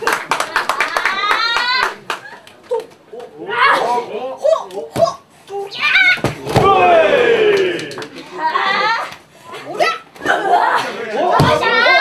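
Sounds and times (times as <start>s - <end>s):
spectators clapping: 0.0s - 2.9s, 7.4s - 8.2s.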